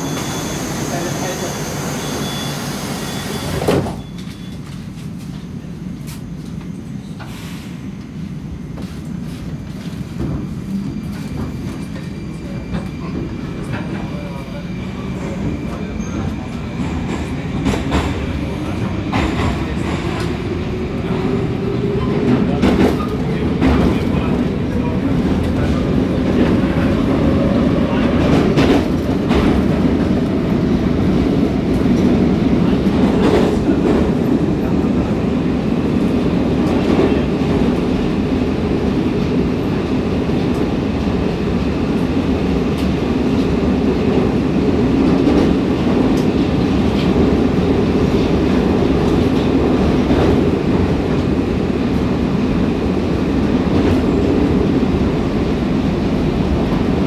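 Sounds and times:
train running gear rumble: 3.5s - 57.0s.

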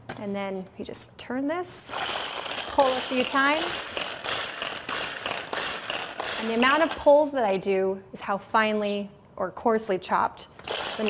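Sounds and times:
pull-cord chopper ratcheting whir: 1.9s - 7.0s, 10.6s - 11.0s.

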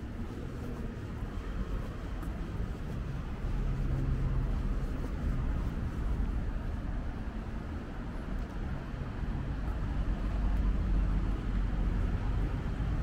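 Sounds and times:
distant city traffic rumble: 0.0s - 13.0s.

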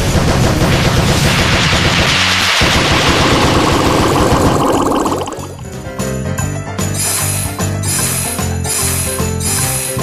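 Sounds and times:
rapid rattling slot game effects: 2.7s - 5.6s.

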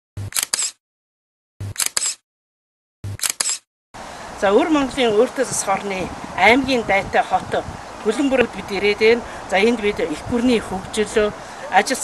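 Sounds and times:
camera shutter clicking: 0.3s - 0.8s, 1.7s - 2.2s, 3.2s - 3.6s.

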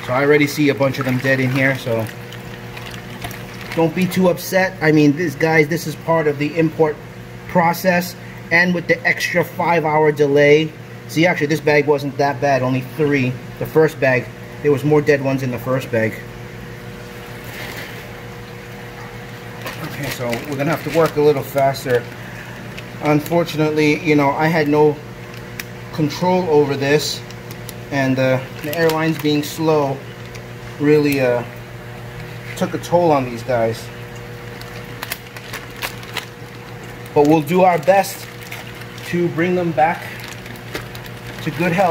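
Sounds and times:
water swishing in a tub: 0.0s - 7.4s, 16.0s - 41.9s
low electrical hum: 0.0s - 41.9s
plastic bag crinkling: 0.1s - 4.2s, 19.4s - 31.1s, 34.4s - 41.9s.

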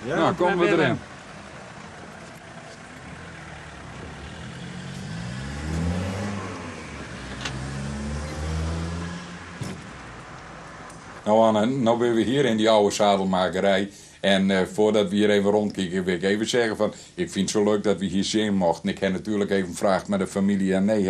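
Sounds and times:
car engine passing: 0.0s - 11.7s.

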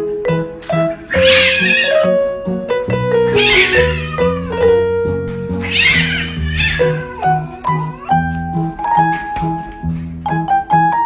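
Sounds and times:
background music: 0.0s - 11.0s
cat yowling: 1.1s - 2.1s, 3.3s - 4.7s, 5.6s - 7.3s.

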